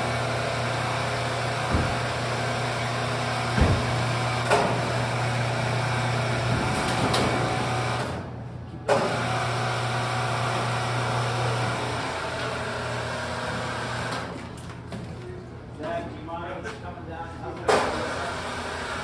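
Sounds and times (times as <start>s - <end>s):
motor clunk: 1.3s - 5.0s, 6.3s - 9.3s.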